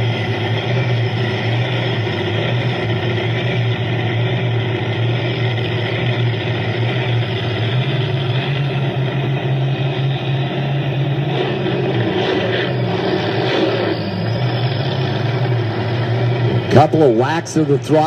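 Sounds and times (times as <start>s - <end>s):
vee eight engine idling loudly: 0.0s - 18.0s.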